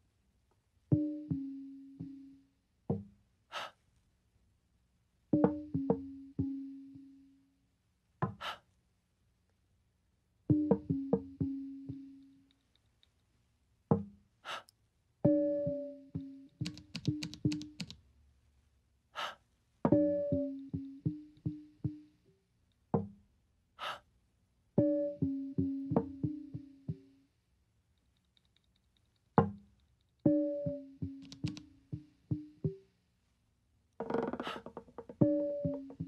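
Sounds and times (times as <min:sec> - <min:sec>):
breathy gasp: 0:03.5 - 0:03.8, 0:08.4 - 0:08.7, 0:14.4 - 0:14.7, 0:19.2 - 0:19.4, 0:23.8 - 0:24.1
wooden knock: 0:34.0 - 0:35.3.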